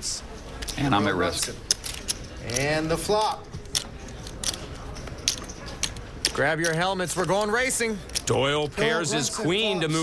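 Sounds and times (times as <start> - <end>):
poker chips and cards clicking: 0.6 - 8.7.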